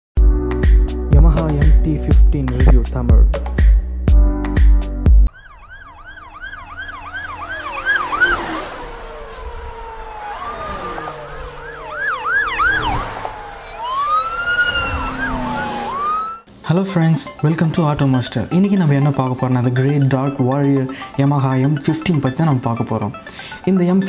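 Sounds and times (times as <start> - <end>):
music beat: 0.2 - 5.3
wailing siren: 5.3 - 16.5
yelping sirens: 5.3 - 16.5.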